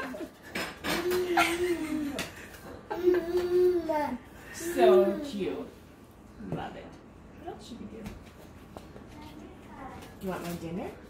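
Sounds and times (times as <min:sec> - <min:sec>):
toddler humming: 0:02.9 - 0:04.3.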